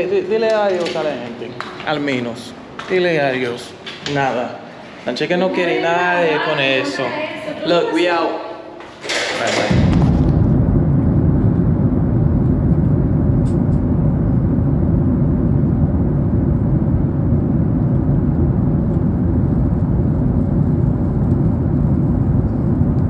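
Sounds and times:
loud low-pitched noise: 0:08.4 - 0:23.0.

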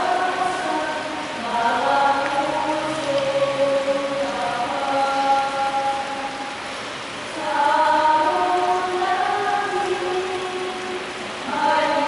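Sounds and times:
choir singing a slow hymn: 0:00.0 - 0:06.6, 0:07.2 - 0:12.0.

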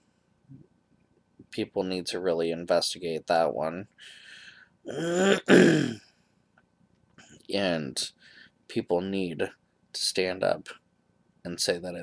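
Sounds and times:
man clearing his throat: 0:04.9 - 0:06.1.

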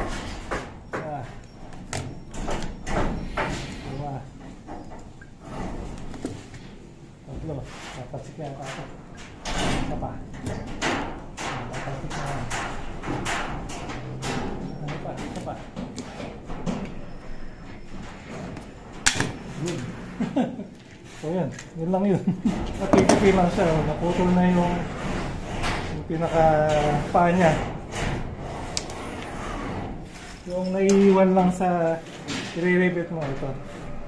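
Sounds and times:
people talking: 0:01.0 - 0:01.4, 0:03.9 - 0:04.3, 0:07.3 - 0:08.9, 0:09.8 - 0:10.2, 0:11.7 - 0:12.6, 0:14.2 - 0:15.7, 0:19.6 - 0:20.0, 0:21.2 - 0:24.9, 0:26.0 - 0:27.7, 0:30.5 - 0:32.0, 0:32.6 - 0:33.6.

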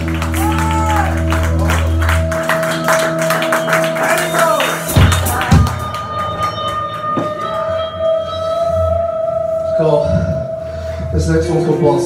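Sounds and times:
live band playing: 0:00.0 - 0:12.0.

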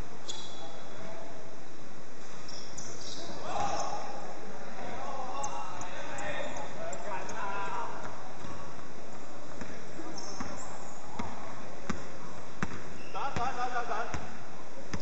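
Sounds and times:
basketball bouncing on hardwood: 0:11.2 - 0:12.0, 0:12.6 - 0:12.8.

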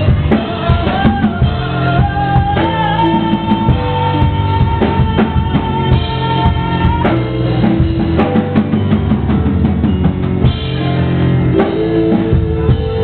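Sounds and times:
drum kit beat: 0:00.0 - 0:13.0
synthesizer keyboard chords: 0:00.0 - 0:13.0.

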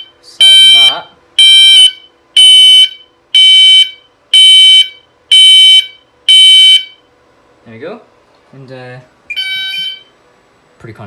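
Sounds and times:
fire alarm pulsed beeping: 0:00.0 - 0:07.1, 0:09.3 - 0:10.2.

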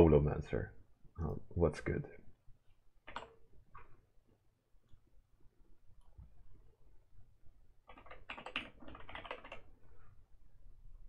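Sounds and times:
computer keyboard typing: 0:03.0 - 0:03.9, 0:07.8 - 0:09.8.

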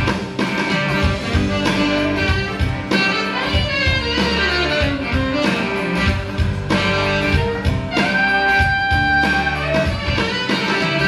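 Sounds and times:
guitar: 0:00.0 - 0:11.0
saxophone melody: 0:00.6 - 0:11.0
low bass line: 0:01.0 - 0:10.2.

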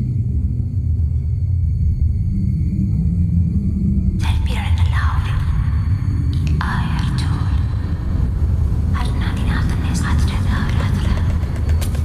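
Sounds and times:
low drone: 0:00.0 - 0:12.0.

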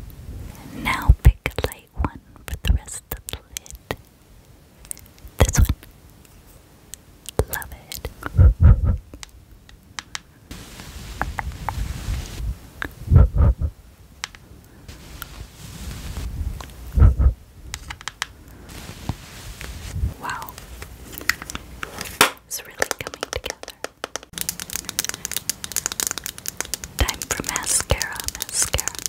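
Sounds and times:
deep thumps: 0:08.3 - 0:09.0, 0:13.1 - 0:13.8, 0:17.0 - 0:17.4
makeup brush swishing and scratching: 0:14.9 - 0:16.3, 0:18.7 - 0:20.8, 0:25.6 - 0:29.0.

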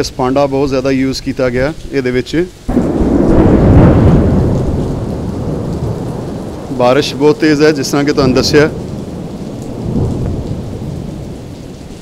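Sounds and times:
heavy rain pouring: 0:00.0 - 0:12.0
low rumble of thunder: 0:02.7 - 0:12.0.

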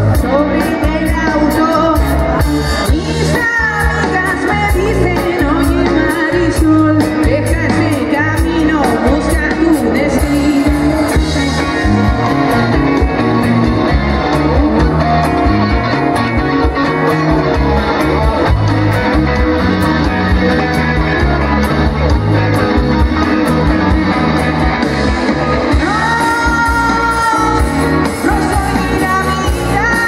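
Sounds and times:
bass guitar: 0:00.0 - 0:30.0
drum kit beat: 0:00.0 - 0:30.0
electric guitar: 0:00.0 - 0:30.0.

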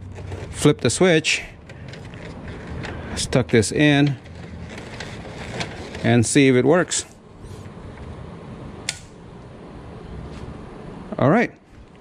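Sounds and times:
low background noise: 0:00.0 - 0:12.0
circuit breaker switch click: 0:08.8 - 0:09.2.

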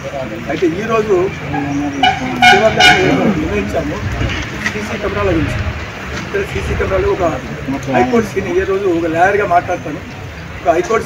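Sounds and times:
man speaking: 0:00.0 - 0:11.0
vehicle horn toots: 0:01.5 - 0:03.5.

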